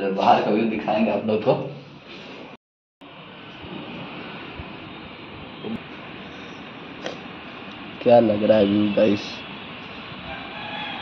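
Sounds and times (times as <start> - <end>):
urban hum and hiss: 0.0 - 11.0.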